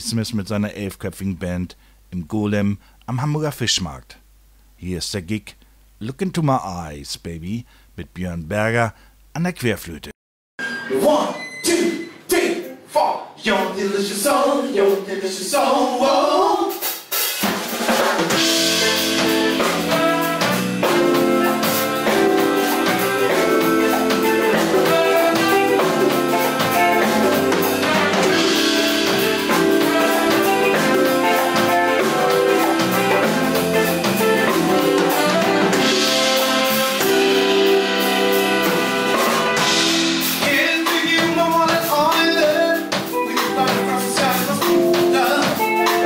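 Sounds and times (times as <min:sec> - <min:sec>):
congas: 0:14.9 - 0:46.0
funk jazz band playing live: 0:16.8 - 0:46.0
person singing: 0:40.4 - 0:46.0.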